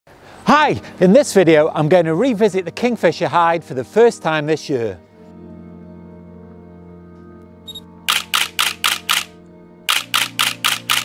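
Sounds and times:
camera shutter clicks: 8.1s - 11.0s.

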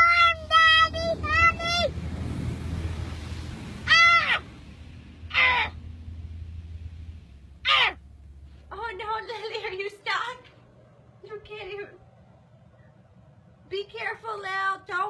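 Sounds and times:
car interior hum: 0.0s - 10.4s.

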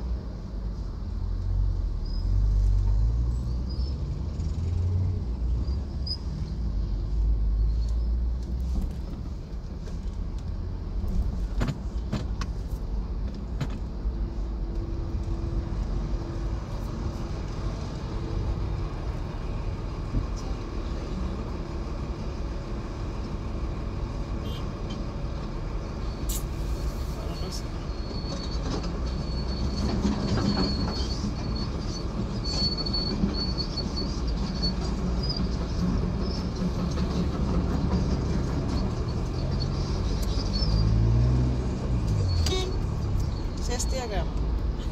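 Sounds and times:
traffic rumble inside car: 0.0s - 44.9s.

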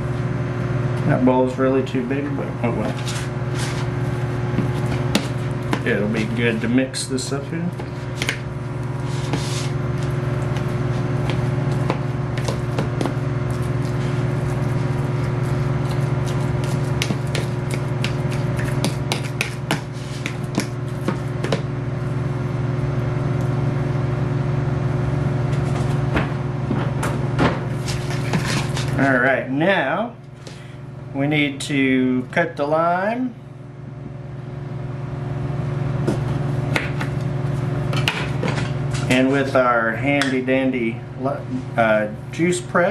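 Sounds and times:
microwave oven humming: 0.0s - 42.9s.

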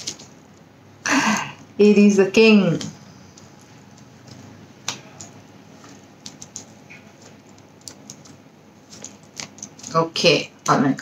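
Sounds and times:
cards clicking and tapping: 4.0s - 10.0s.

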